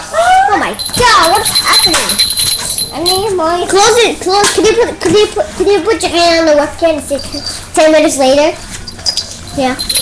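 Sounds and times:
thin steady high tone: 0.5 - 3.6, 9.0 - 10.0.

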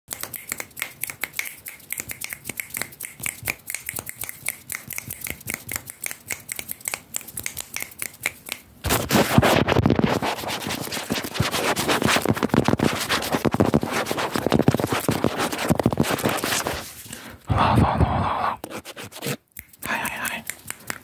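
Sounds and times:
rapid finger snaps: 0.1 - 8.8, 19.5 - 21.0
fabric rubbing on microphone: 8.8 - 19.4.

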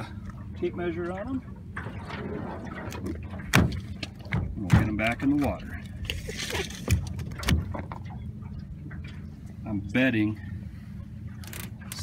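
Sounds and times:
steady low hum: 0.0 - 12.0
fish thumping on boat floor: 3.5 - 5.5.

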